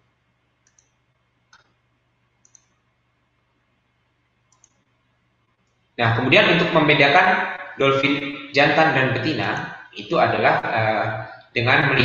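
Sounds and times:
faint low hum: 0.0 - 12.0
faint clicks: 0.6 - 1.8, 2.4 - 2.8, 4.5 - 4.9.

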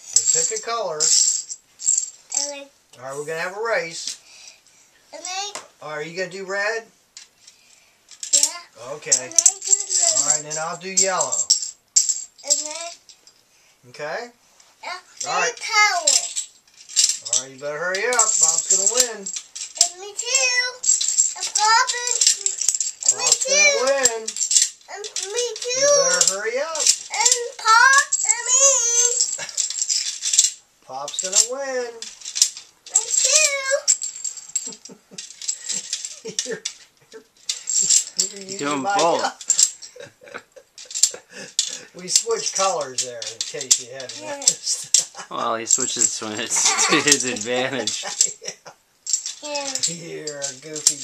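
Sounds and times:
plastic checkers clattering into grid: 0.1 - 2.5, 8.1 - 12.9, 15.2 - 51.0.

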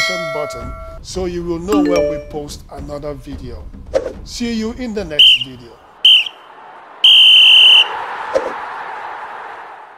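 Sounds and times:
referee's whistle blasts: 5.2 - 6.4.

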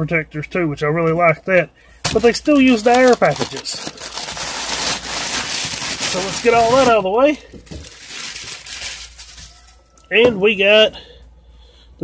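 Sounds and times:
plastic packaging crinkling: 2.1 - 9.8.

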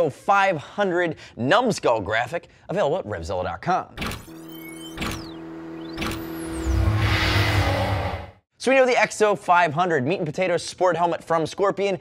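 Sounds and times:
held tone: 4.2 - 8.3
falling whooshes: 6.2 - 8.4.

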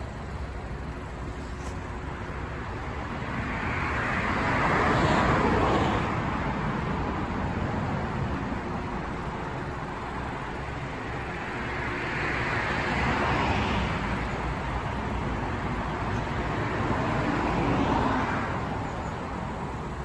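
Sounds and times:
low traffic rumble: 0.0 - 20.0
vehicles passing: 0.0 - 20.0.

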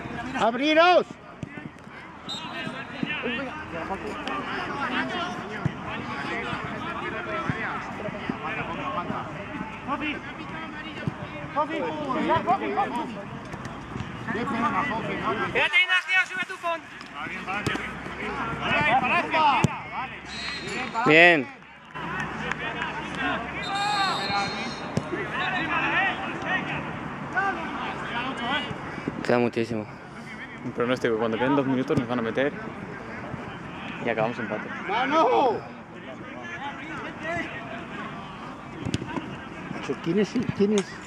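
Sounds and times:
footballers shouting and chattering: 0.0 - 41.0.

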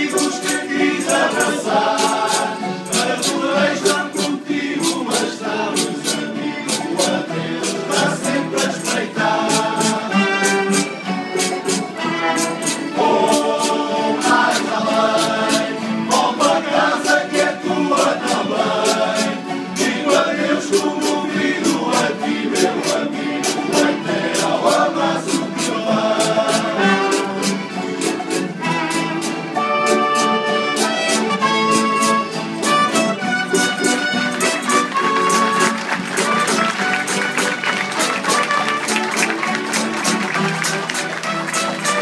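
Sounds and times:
men singing in chorus: 0.0 - 10.6, 13.0 - 27.5
strummed acoustic guitars: 0.0 - 42.0
tambourine-like jingle: 0.1 - 3.4.

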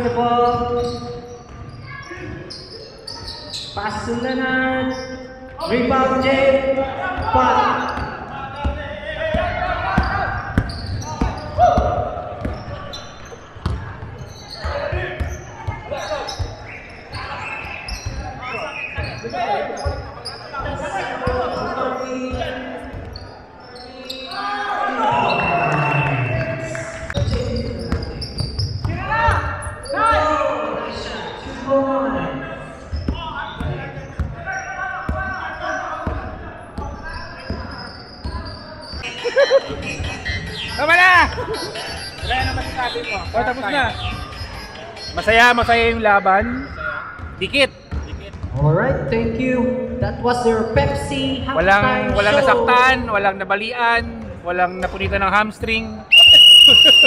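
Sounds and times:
players calling: 0.0 - 48.6, 49.5 - 57.0
basketball bouncing: 7.1 - 16.6, 47.2 - 48.6.

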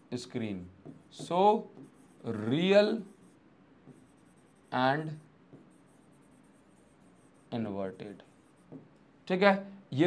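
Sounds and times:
pen scratching and tapping: 0.8 - 2.7, 5.5 - 7.5, 8.2 - 9.0.

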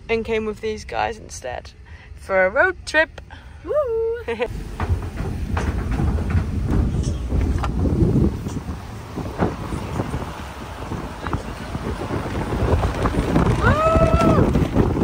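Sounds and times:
road and engine rumble: 0.0 - 15.0
wind buffeting microphone: 4.4 - 15.0
short knocks: 4.5 - 11.5.

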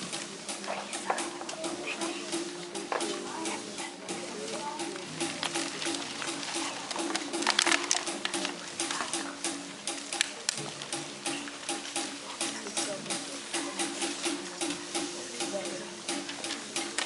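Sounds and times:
broom bristles swishing on floor: 0.0 - 17.0
newspaper rustling and crumpling: 5.3 - 9.1.

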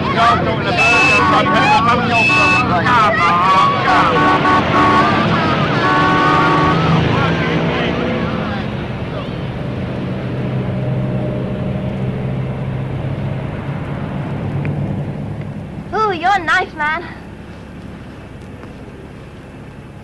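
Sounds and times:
car engine droning: 0.0 - 20.0.

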